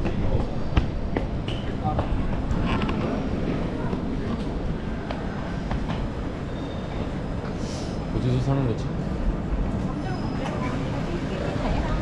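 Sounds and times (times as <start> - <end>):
low rumble of trains: 0.0 - 12.0.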